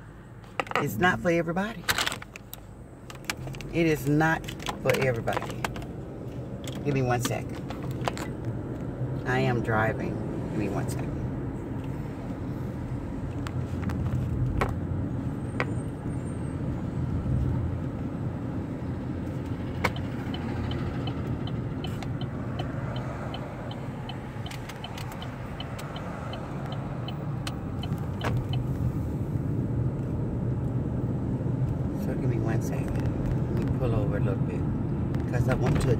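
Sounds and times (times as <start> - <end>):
road and engine rumble inside car: 0.0 - 35.9
turn signal ticking: 17.7 - 33.8.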